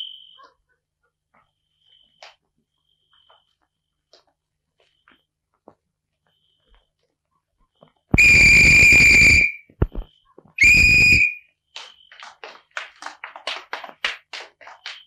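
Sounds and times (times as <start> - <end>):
running footsteps: 7.8 - 15.0
shrill whistle blasts: 8.1 - 11.9.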